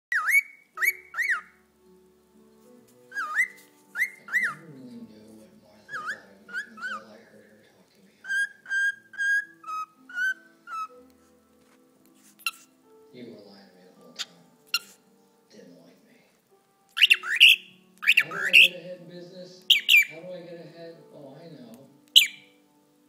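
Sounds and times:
cockatiel chirping: 0.1 - 1.6, 3.1 - 4.6, 5.9 - 7.1, 8.2 - 11.1, 12.3 - 12.7, 14.1 - 15.0, 16.9 - 18.8, 19.6 - 20.2, 22.1 - 22.6
cockatiel whistling notes: 0.1 - 1.6, 3.1 - 4.7, 5.9 - 7.1, 8.2 - 11.1, 12.4 - 12.7, 14.2 - 15.0, 17.0 - 18.8, 19.6 - 20.2, 22.1 - 22.6.

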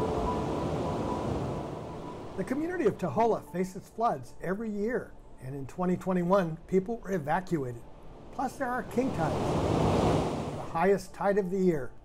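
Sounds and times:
ocean surf breaking: 0.0 - 2.6, 7.9 - 10.8
faint held music notes: 0.0 - 9.3.

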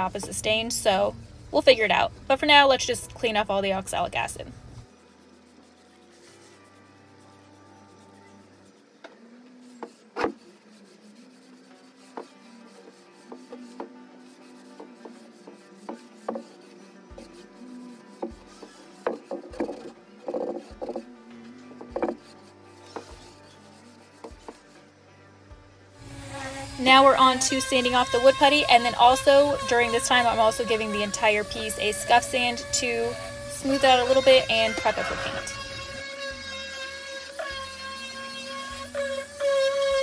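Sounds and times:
soft background music: 0.0 - 40.0
damp cloth rubbing on wood: 9.7 - 21.0, 26.0 - 36.1.

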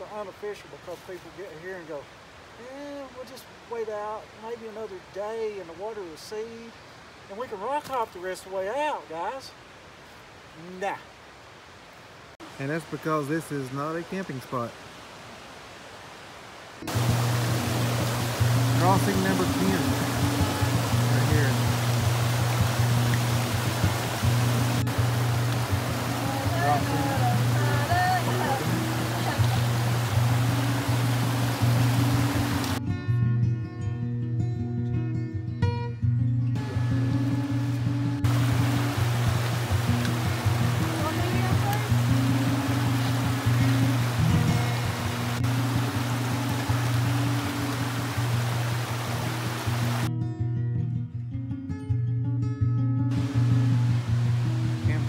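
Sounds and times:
fast mountain creek rushing: 0.0 - 32.8, 36.6 - 50.1, 53.1 - 55.0.

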